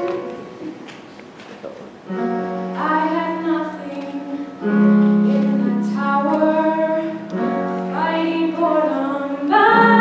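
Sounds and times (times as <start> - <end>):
musical accompaniment: 0.0 - 1.2, 2.0 - 10.0.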